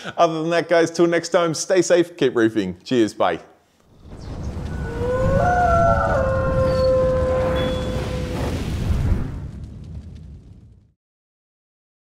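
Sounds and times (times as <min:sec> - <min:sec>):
deep rumble: 0:04.0 - 0:10.9
wolf howl: 0:04.6 - 0:08.5.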